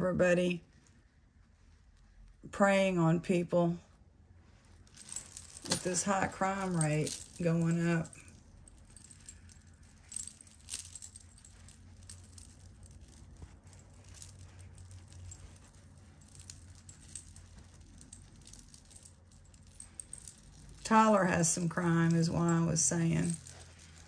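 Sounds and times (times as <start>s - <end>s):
metal chains and beads clinking: 4.6s - 24.0s.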